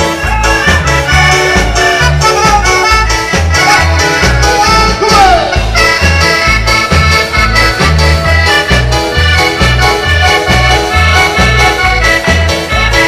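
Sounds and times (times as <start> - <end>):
accordion dance band music: 0.0 - 13.0
bass beat: 0.0 - 13.0.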